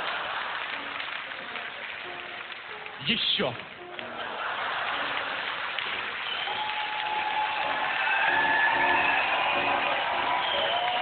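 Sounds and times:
audience applauding: 0.0s - 11.0s.

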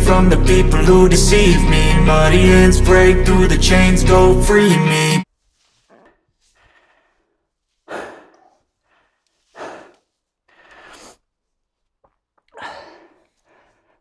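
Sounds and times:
man breathing heavily: 5.7s - 11.6s, 12.5s - 14.0s.

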